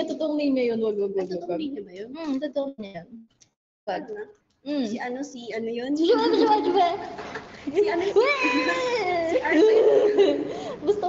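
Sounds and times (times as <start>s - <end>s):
voice: 0.0s - 3.3s, 3.9s - 7.0s, 7.7s - 11.0s.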